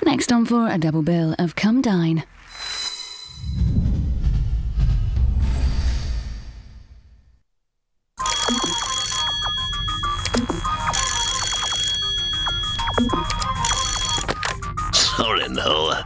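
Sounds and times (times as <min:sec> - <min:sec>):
telephone bell ringing: 0:08.2 - 0:14.4.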